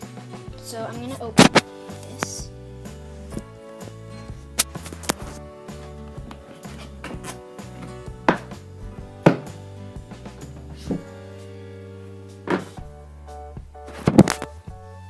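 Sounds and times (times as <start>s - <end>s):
background music: 0.0s - 15.0s
container knocks and clunks: 6.2s - 9.6s, 12.5s - 12.9s, 13.9s - 14.5s.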